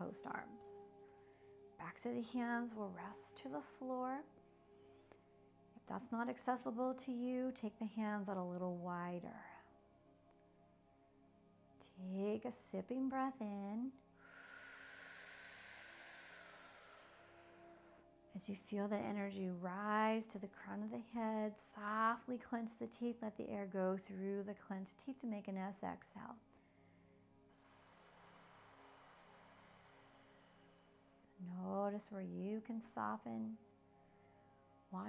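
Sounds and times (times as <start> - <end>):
woman exhaling with hissing s: 14.2 - 18.0, 27.5 - 31.3.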